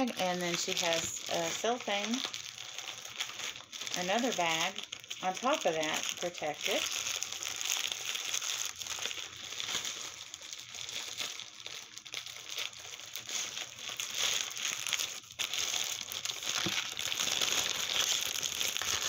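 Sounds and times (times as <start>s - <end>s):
plastic bags crinkling: 0.0s - 19.0s.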